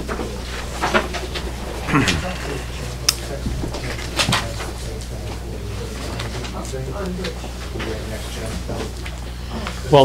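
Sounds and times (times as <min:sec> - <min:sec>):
indistinct low voice: 0:00.0 - 0:09.0
people moving about: 0:00.0 - 0:10.0
steady low hum: 0:00.0 - 0:10.0
brief falling murmur: 0:00.8 - 0:04.1.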